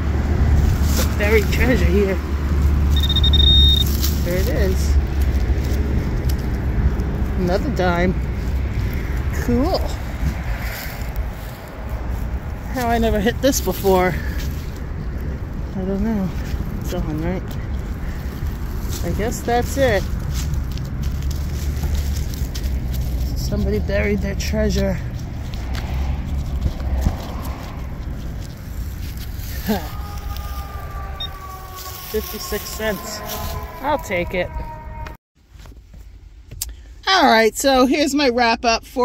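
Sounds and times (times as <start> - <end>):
hand sifting through soil and leaves: 0.0 - 34.4
low outdoor rumble: 0.0 - 39.0.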